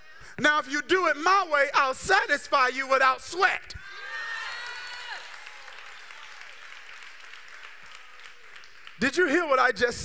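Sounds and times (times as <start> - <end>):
congregation applauding: 4.1 - 10.0.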